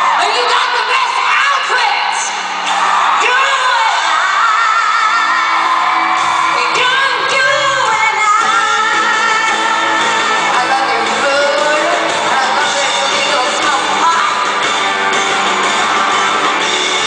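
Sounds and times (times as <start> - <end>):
woman singing pop ballad: 6.5 - 14.4.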